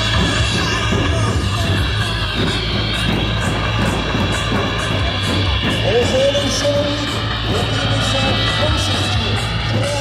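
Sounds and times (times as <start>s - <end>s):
music with steady beat: 0.0s - 10.0s.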